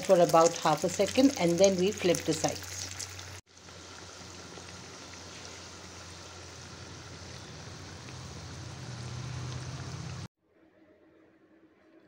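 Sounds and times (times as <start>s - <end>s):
food deep-frying in oil: 0.0s - 10.3s
low hum: 3.6s - 10.3s.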